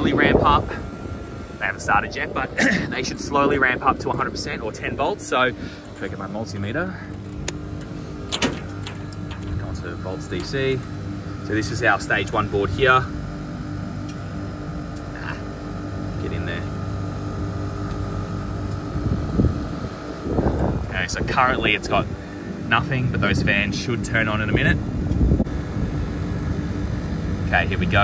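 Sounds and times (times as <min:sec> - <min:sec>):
air conditioning unit humming: 0:00.0 - 0:28.0.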